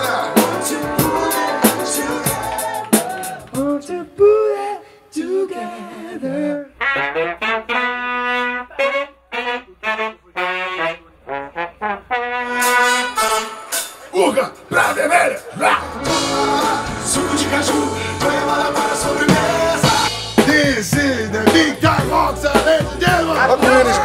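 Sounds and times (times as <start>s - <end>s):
horn section playing: 0.0s - 3.4s, 6.8s - 14.1s, 15.7s - 24.0s
drum hits: 16.0s - 24.0s.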